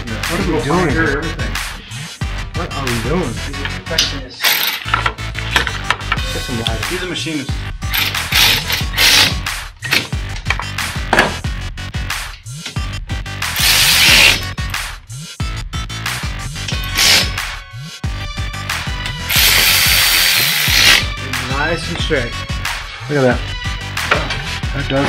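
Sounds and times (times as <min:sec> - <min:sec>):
background music: 0:00.0 - 0:25.0
cordless ratchet driving bolt: 0:04.4 - 0:05.8, 0:07.9 - 0:10.1, 0:13.6 - 0:14.4, 0:16.7 - 0:17.3, 0:19.3 - 0:21.0
cut-off wheel: 0:07.9 - 0:09.4, 0:13.6 - 0:14.5, 0:16.8 - 0:17.4, 0:19.3 - 0:21.1
power tool high whine: 0:13.6 - 0:14.4, 0:19.3 - 0:21.1.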